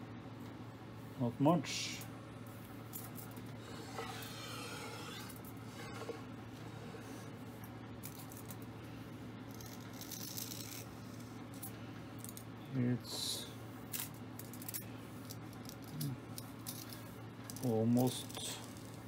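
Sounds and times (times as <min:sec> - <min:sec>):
steady low hum: 0:00.0 - 0:19.0
metal scraping on surface plate: 0:03.7 - 0:06.2.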